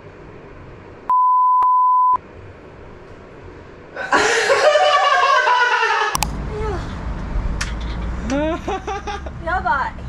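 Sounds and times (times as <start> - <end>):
high electronic censor beep: 1.1 - 2.2.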